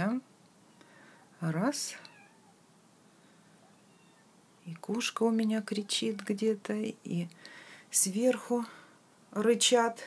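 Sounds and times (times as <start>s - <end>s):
cat meowing faintly: 1.9s - 2.6s, 3.6s - 4.4s.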